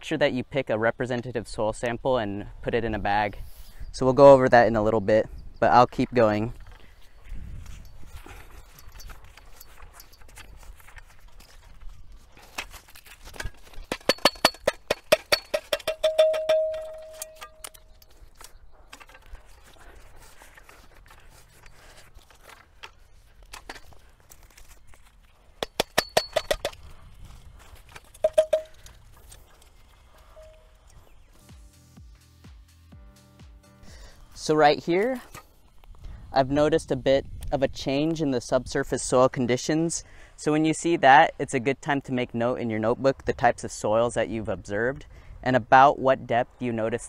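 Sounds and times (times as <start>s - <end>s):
hammer tapping metal bucket: 13.9s - 17.7s, 25.6s - 26.8s, 28.2s - 28.8s.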